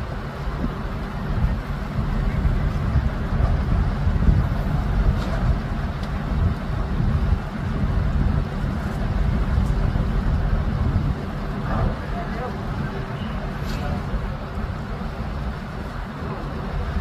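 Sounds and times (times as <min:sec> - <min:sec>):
heavy machinery engine rumble: 0:00.0 - 0:17.0
wind buffeting microphone: 0:00.0 - 0:17.0.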